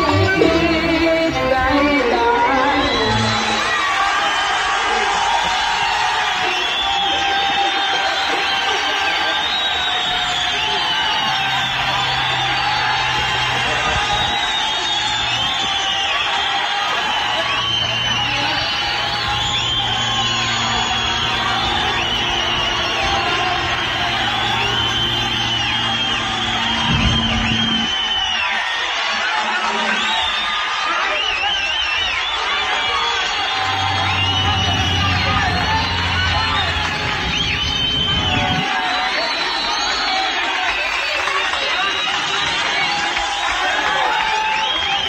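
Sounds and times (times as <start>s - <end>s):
audience cheering and whooping: 0.0s - 45.0s
orchestra playing: 17.9s - 27.9s, 33.5s - 37.2s.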